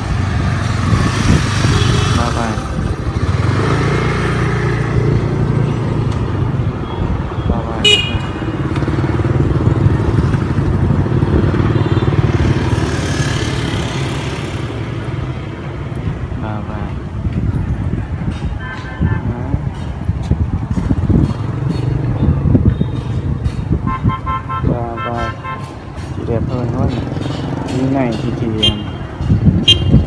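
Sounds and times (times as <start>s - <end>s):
motor scooter engines passing: 0.0s - 30.0s.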